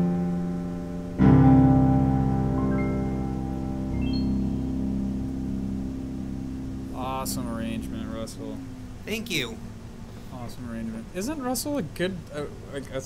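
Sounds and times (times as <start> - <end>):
digital piano chords: 0.0 - 12.2
man's voice: 6.9 - 9.6.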